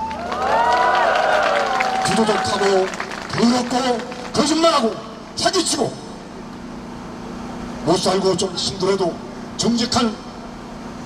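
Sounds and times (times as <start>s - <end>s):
street traffic hum: 0.0s - 11.0s
man's amplified speech: 2.0s - 6.2s, 7.8s - 10.4s.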